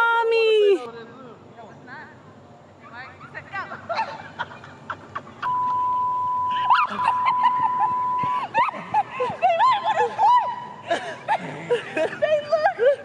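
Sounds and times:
people laughing: 3.6s - 5.9s, 6.5s - 13.0s
electronic censor bleep: 5.4s - 8.4s.

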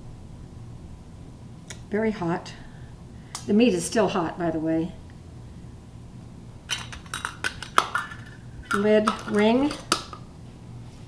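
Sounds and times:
metal lid clinking on glass jar: 6.7s - 10.2s.

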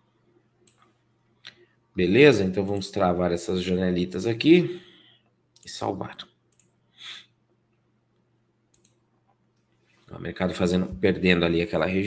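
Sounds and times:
computer mouse clicks: 0.6s - 1.6s, 6.5s - 6.8s, 8.7s - 9.0s.

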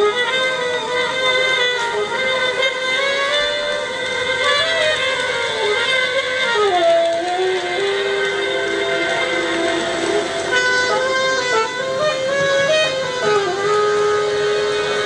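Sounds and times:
saxophone long held tones: 0.0s - 15.0s.

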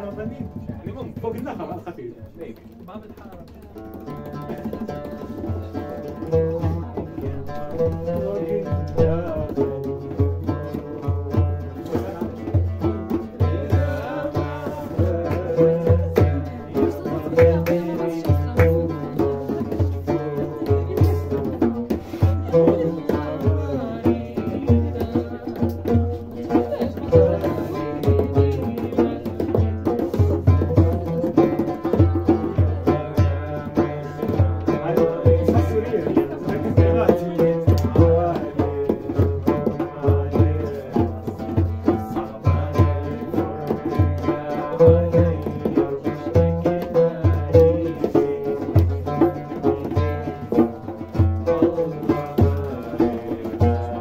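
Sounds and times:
oud playing plucked melody: 0.0s - 54.0s.

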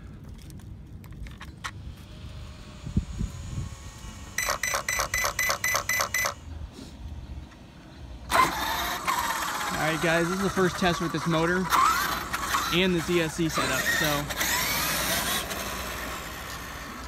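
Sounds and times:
short high beeps: 4.4s - 6.4s.

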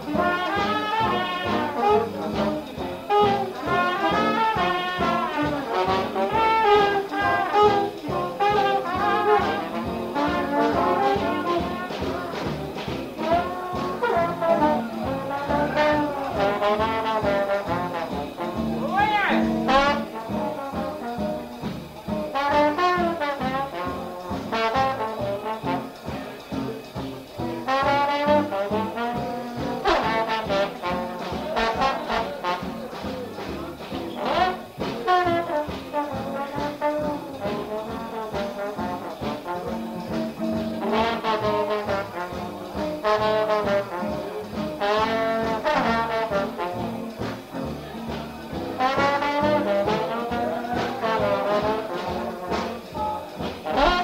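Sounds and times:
jazz horns playing: 0.0s - 54.0s
steady drum beat: 0.0s - 54.0s.

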